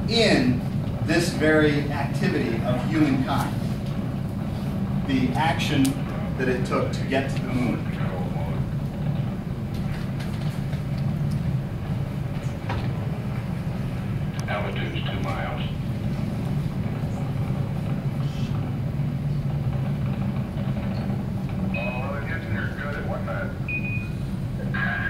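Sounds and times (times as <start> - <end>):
rocket rumble over loudspeakers: 0.0 - 23.7.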